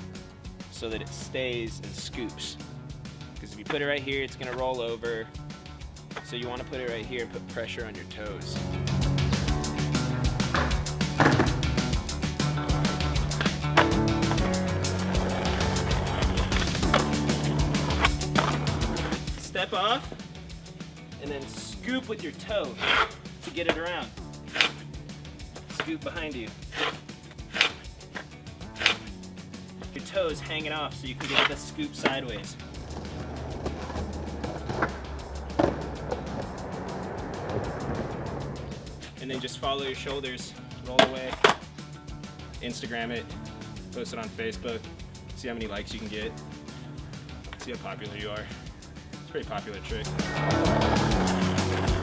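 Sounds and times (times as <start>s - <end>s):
background music: 0.0s - 52.0s
skateboard rolling on concrete: 0.0s - 52.0s
skateboard clacking: 12.7s - 19.4s, 25.5s - 29.1s, 31.1s - 39.4s, 40.9s - 41.7s, 50.2s - 52.0s
skateboard clacks on concrete: 31.2s - 36.5s, 40.9s - 41.7s.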